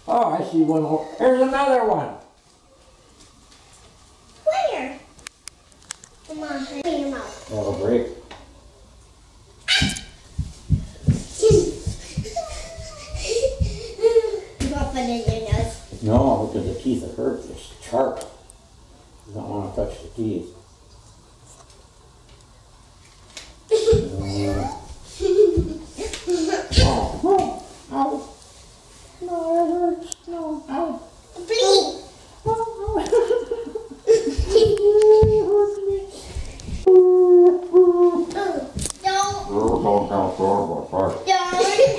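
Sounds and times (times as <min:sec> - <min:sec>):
footsteps on wooden floor: 0:09.8 - 0:14.0, 0:34.3 - 0:36.9.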